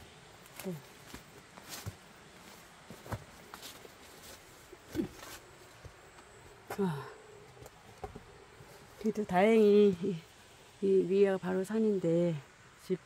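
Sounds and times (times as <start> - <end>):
footsteps on a path: 0.0 - 9.2.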